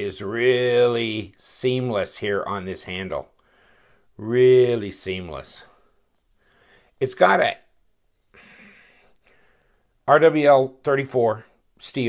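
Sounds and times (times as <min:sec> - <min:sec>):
man breathing in: 0:03.4 - 0:04.2, 0:05.8 - 0:07.0, 0:08.3 - 0:10.0.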